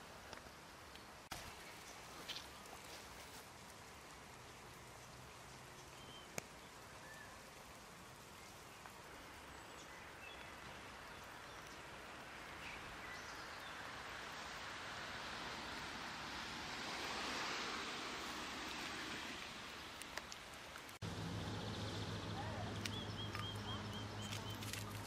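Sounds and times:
light rain hiss: 0:00.0 - 0:25.0
faint bird chirps: 0:05.8 - 0:07.5.

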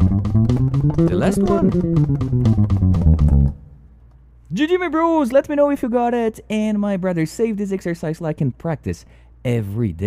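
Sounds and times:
electric bass guitar run: 0:00.0 - 0:03.8.

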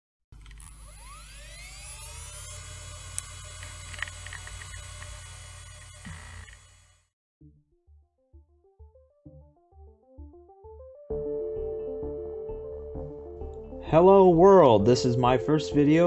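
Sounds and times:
electric hum with rising whine: 0:00.4 - 0:07.1
sharp crackling clicks: 0:03.1 - 0:05.2
synthesizer melody: 0:07.4 - 0:16.0.

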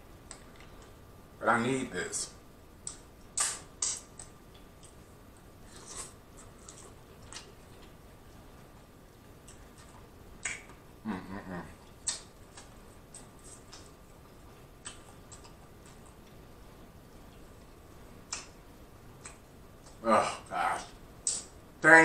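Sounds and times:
wet lip smacks while chewing: 0:02.8 - 0:05.0, 0:11.8 - 0:14.0, 0:14.8 - 0:16.4
person humming mm: 0:11.0 - 0:11.8.

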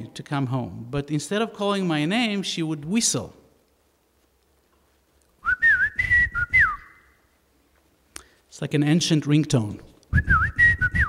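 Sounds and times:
man whistling: 0:05.4 - 0:07.2, 0:10.1 - 0:11.0.

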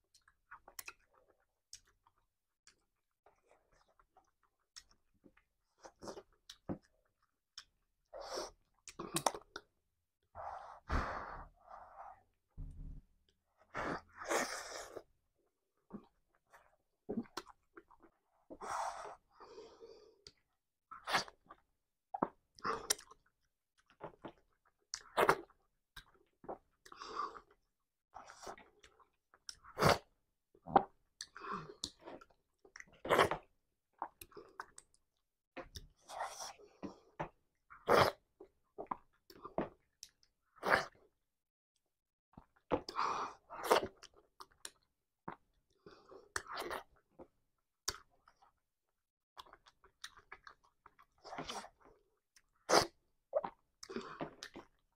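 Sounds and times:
person chewing food: 0:00.0 - 0:07.8, 0:08.6 - 0:09.7, 0:15.9 - 0:18.2, 0:19.8 - 0:27.6, 0:28.2 - 0:41.0, 0:42.3 - 0:48.6, 0:49.4 - 0:54.9.

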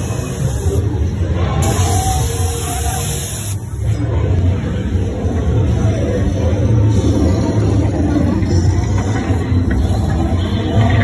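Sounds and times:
haunted house music with low drone: 0:03.9 - 0:11.0.

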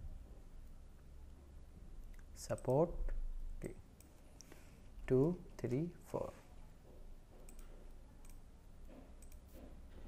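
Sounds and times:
computer mouse clicks: 0:07.4 - 0:09.7.

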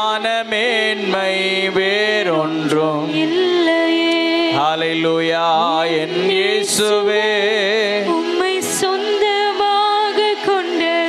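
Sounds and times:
man singing worship song: 0:00.0 - 0:09.4.

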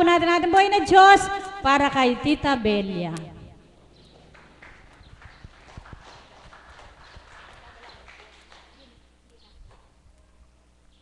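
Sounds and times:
scattered hand clapping: 0:03.9 - 0:09.0.

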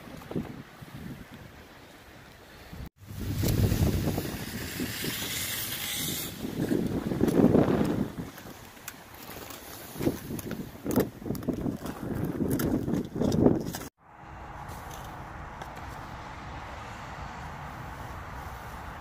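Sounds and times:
wind buffeting microphone: 0:00.0 - 0:01.8, 0:02.6 - 0:08.8, 0:09.9 - 0:13.9.

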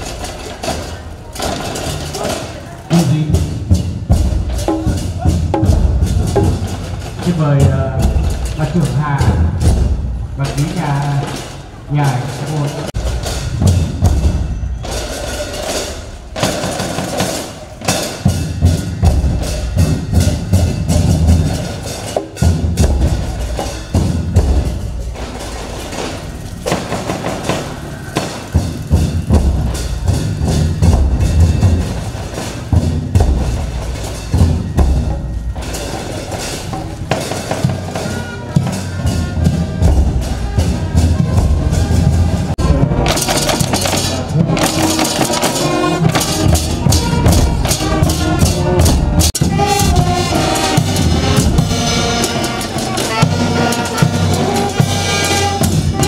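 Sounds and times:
barrel drums beating: 0:00.0 - 0:56.0
hand cymbals clashing: 0:00.0 - 0:56.0.

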